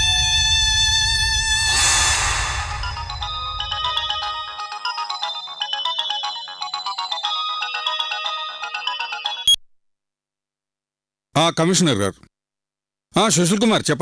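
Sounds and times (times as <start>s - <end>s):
phone ringtone chiming melody: 2.6s - 9.6s.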